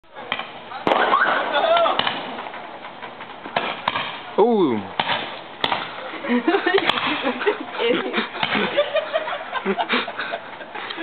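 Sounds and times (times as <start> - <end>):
fireworks popping: 0.3 - 7.4.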